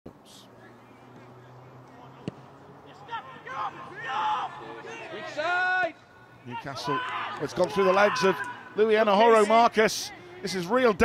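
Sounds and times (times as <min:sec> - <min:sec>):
players calling out: 0:00.5 - 0:11.0.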